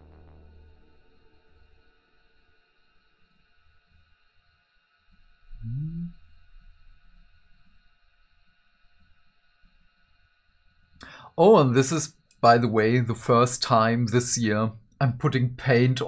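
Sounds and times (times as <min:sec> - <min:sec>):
faint steady tones: 0:00.0 - 0:16.0
man humming: 0:05.5 - 0:06.4.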